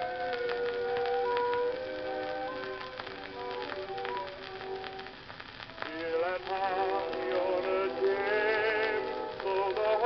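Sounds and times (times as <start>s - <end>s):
male quartet singing ballad: 5.8s - 10.0s.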